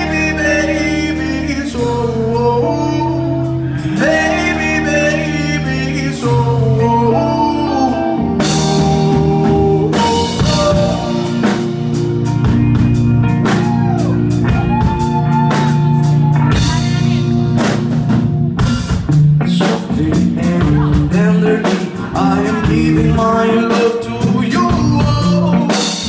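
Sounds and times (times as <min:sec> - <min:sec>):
sustained melodic notes: 0:00.0 - 0:19.2
bass guitar: 0:00.0 - 0:26.0
electric guitar: 0:00.0 - 0:26.0
drum kit beat: 0:08.2 - 0:26.0.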